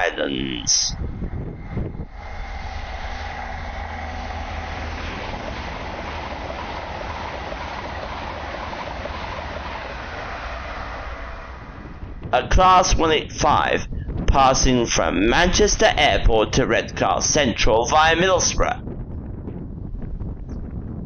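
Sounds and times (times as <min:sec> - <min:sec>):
high-speed train passing: 0:00.0 - 0:20.9.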